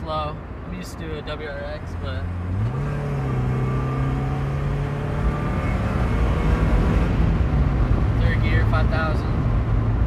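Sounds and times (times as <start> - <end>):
car engine accelerating: 1.8 - 10.0.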